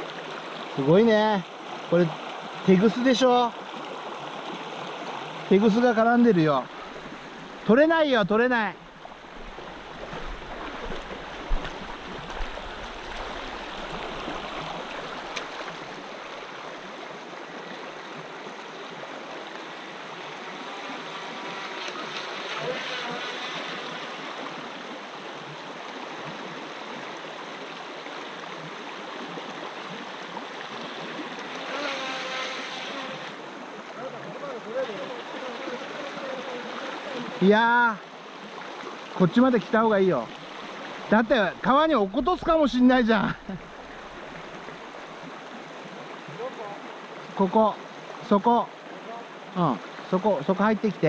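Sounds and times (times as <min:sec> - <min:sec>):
stream running over stones: 0:00.0 - 0:51.0.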